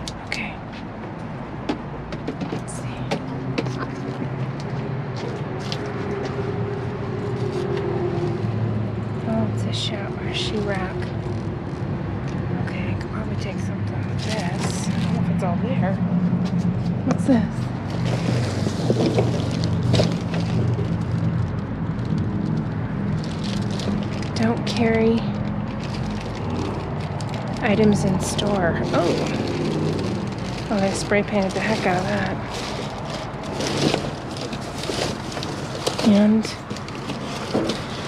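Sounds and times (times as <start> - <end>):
junk clicking and rustling: 0.8 - 6.5, 17.8 - 38.0.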